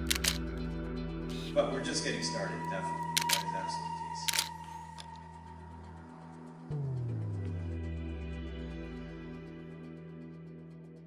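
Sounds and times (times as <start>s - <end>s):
camera shutter clicks: 0.0s - 0.4s, 3.2s - 3.5s, 4.3s - 4.6s
music with long held notes: 0.0s - 11.0s.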